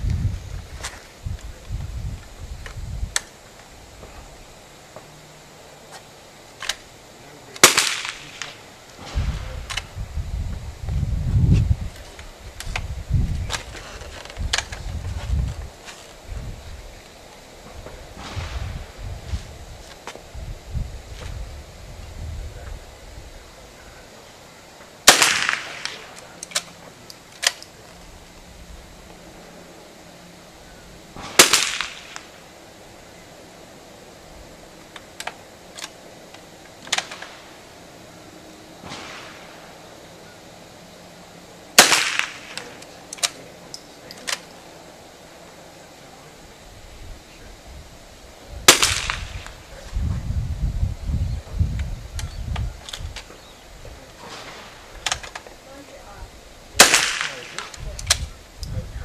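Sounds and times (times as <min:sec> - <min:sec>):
low rumbling: 0:00.0 - 0:07.6, 0:08.2 - 0:25.0
faint cracks and clicks: 0:06.6 - 0:06.9, 0:25.1 - 0:28.0, 0:34.8 - 0:37.4, 0:41.8 - 0:44.6, 0:54.3 - 0:55.6, 0:56.8 - 0:58.8
rifle shots with echo: 0:07.6 - 0:09.8, 0:25.0 - 0:26.3, 0:31.2 - 0:32.4, 0:38.8 - 0:39.8, 0:41.8 - 0:42.8, 0:48.7 - 0:49.6, 0:56.8 - 0:57.8.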